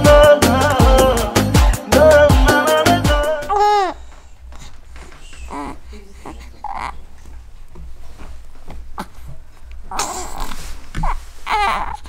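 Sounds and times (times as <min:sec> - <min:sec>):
baby whimpering and crying: 0:03.4 - 0:04.1, 0:05.2 - 0:07.1, 0:09.9 - 0:12.0.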